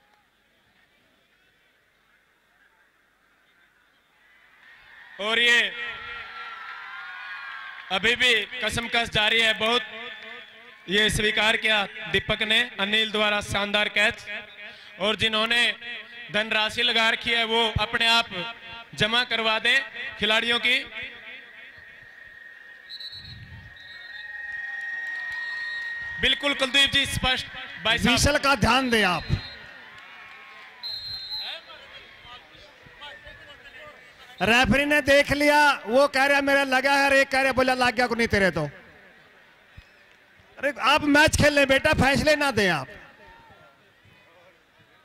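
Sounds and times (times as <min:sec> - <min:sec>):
faint distant crowd voices: 0:00.0 - 0:45.0
high-pitched feedback whine: 0:21.2 - 0:26.5.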